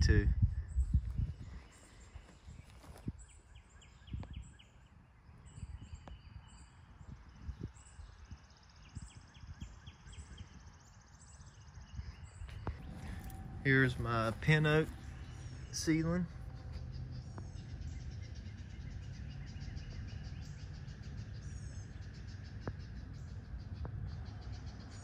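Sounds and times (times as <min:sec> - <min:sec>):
footsteps on grass: 0:01.1 - 0:03.2, 0:12.5 - 0:16.8
low rumble: 0:12.0 - 0:25.0.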